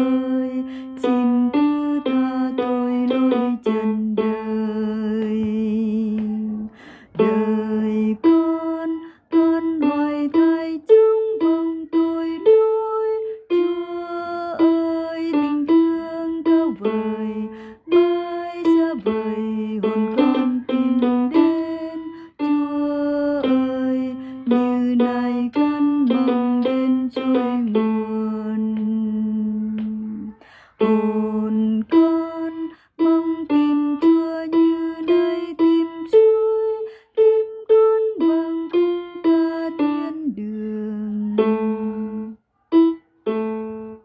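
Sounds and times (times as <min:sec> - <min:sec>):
single hymn melody line: 0:00.0 - 0:44.0.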